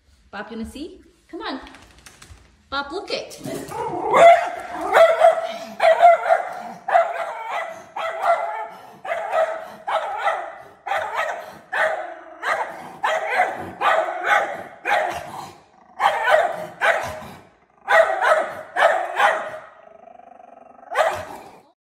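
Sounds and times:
dog barking: 0:03.8 - 0:19.8, 0:20.9 - 0:21.6.

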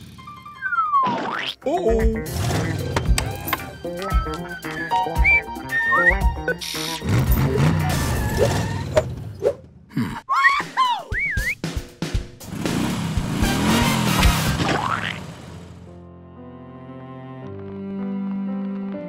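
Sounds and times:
background music: 0:00.1 - 0:09.6, 0:15.8 - 0:19.0
cartoon boing: 0:00.7 - 0:01.6.

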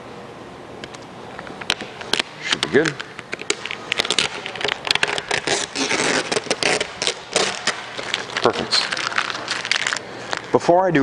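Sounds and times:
vinyl film peeling and crackling: 0:01.6 - 0:10.6.

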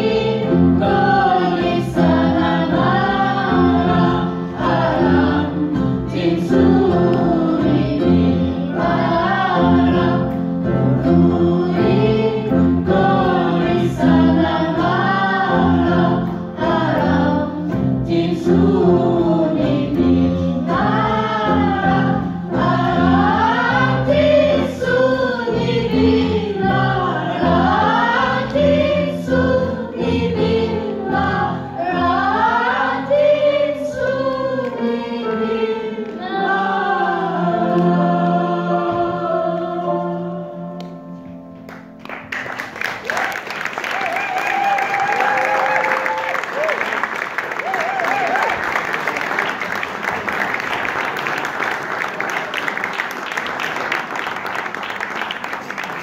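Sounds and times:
women's choir singing: 0:00.0 - 0:40.8.

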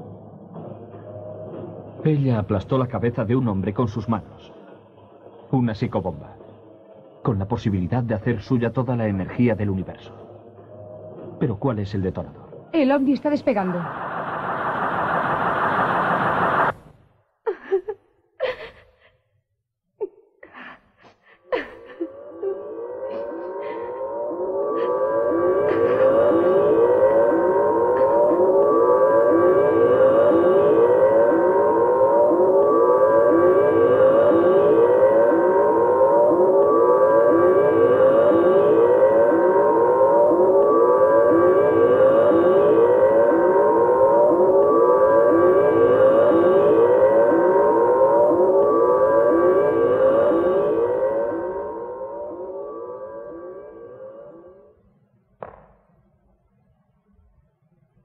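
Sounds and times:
electronic siren warble: 0:22.1 - 0:54.8.

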